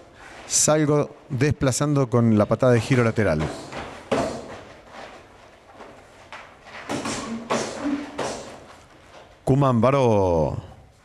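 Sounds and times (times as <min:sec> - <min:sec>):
footwork on a mat: 0:03.3 - 0:09.5
martial arts strikes and kicks: 0:03.4 - 0:04.8, 0:06.8 - 0:08.7.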